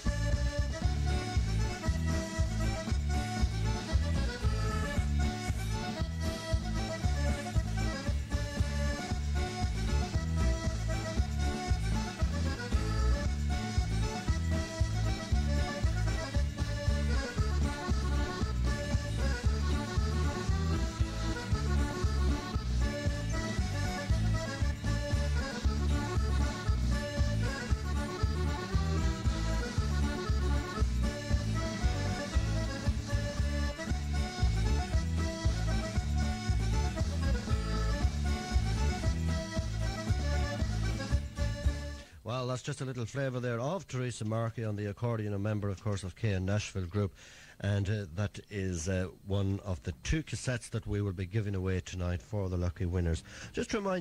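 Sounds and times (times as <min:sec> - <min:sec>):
accordion music over a beat on radio: 0:00.0 - 0:54.0.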